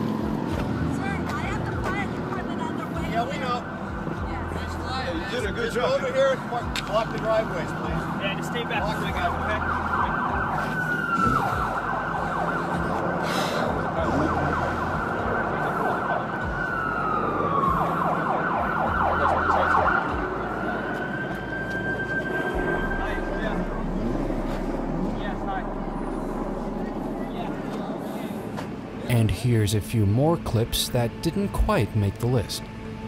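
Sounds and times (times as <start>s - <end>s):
emergency vehicle siren: 0.0s - 29.2s
low steady rumble: 22.6s - 27.7s.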